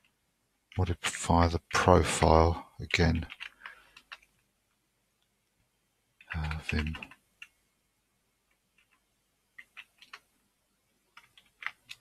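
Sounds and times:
computer keyboard keystrokes: 1.7s - 4.4s, 6.2s - 7.6s, 8.5s - 10.3s, 11.1s - 12.0s.

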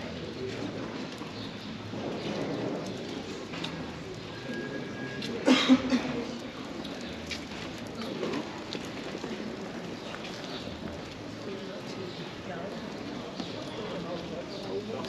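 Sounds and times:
pedestrian street background noise: 0.0s - 15.0s.

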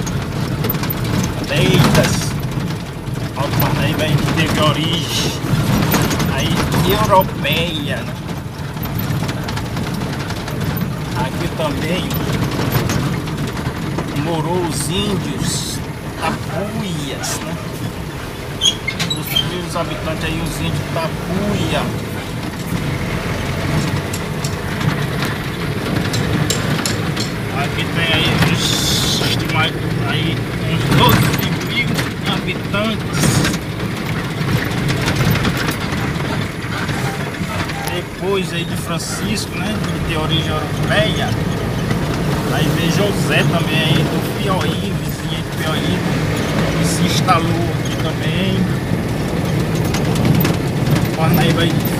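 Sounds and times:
road noise: 0.0s - 51.9s
small rattles and clicks: 0.0s - 51.9s
vehicle engine rumble: 0.0s - 51.9s.

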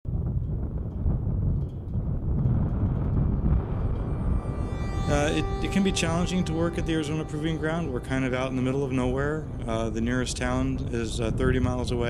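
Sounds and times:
gusty wind rumble: 0.1s - 12.0s.

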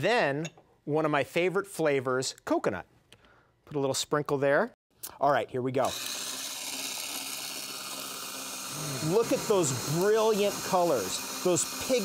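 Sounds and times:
electric motor running: 5.9s - 12.0s.

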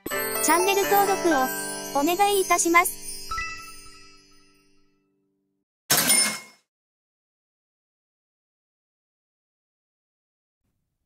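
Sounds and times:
cash register cha-ching: 5.9s - 6.6s.

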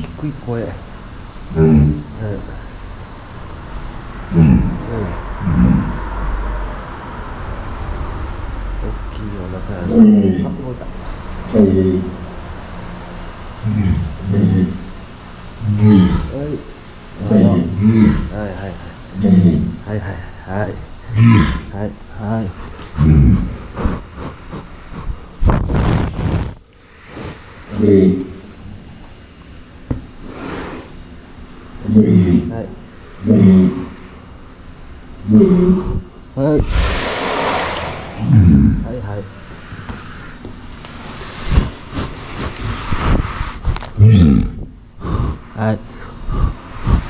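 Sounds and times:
steady low rumble: 0.0s - 30.2s, 30.9s - 47.0s
walrus grunting: 1.5s - 2.8s, 4.2s - 6.3s, 8.8s - 12.4s, 13.6s - 25.3s, 27.6s - 28.9s, 31.8s - 34.2s, 35.2s - 39.4s, 41.5s - 47.0s
walrus breathing and sniffing: 22.3s - 25.5s, 30.2s - 31.0s, 35.4s - 44.0s, 45.0s - 47.0s
walrus exhaling through nostrils: 35.6s - 38.8s, 41.4s - 44.0s.

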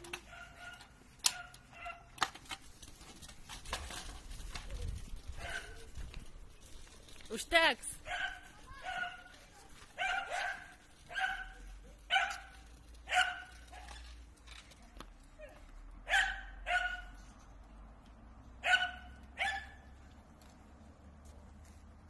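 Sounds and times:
dog barking: 0.3s - 2.1s, 5.4s - 5.8s, 8.0s - 9.4s, 10.0s - 13.9s, 16.1s - 17.2s, 18.6s - 19.8s.

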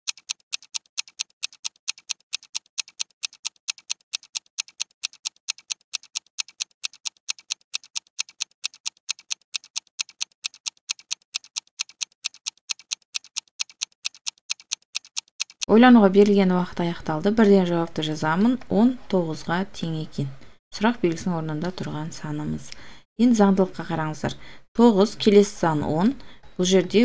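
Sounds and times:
clock ticking: 0.1s - 15.7s.

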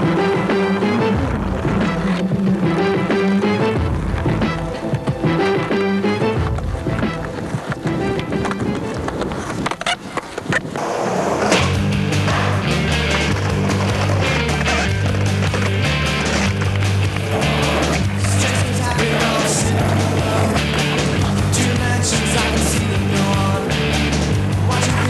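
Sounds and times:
music: 0.0s - 25.0s
skateboard clacks: 0.0s - 25.0s
skateboard wheels rolling on concrete: 0.0s - 25.0s
loud rock song: 11.4s - 25.0s.

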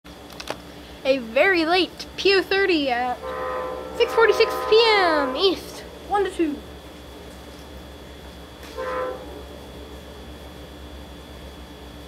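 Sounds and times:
low steady hum: 0.1s - 12.0s
distant train horn: 3.2s - 6.4s, 8.7s - 9.5s.

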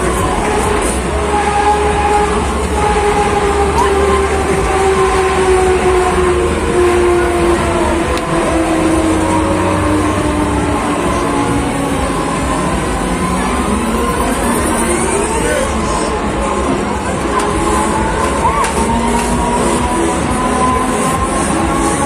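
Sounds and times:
fairground ride machinery whine: 0.0s - 22.0s.

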